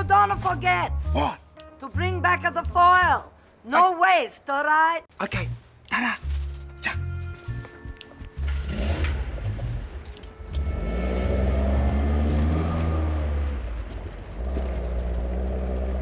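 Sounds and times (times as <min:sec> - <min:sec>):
car engine revving: 0:08.4 - 0:16.0.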